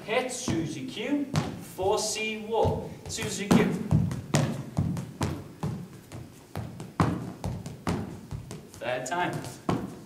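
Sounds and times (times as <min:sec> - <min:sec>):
dance shoes tapping on hardwood: 0:00.3 - 0:10.0.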